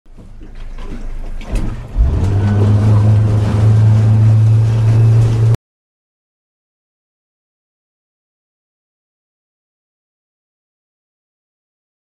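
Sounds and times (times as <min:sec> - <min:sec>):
boat engine running: 0:00.1 - 0:05.6
hull rushing through water: 0:00.3 - 0:05.6.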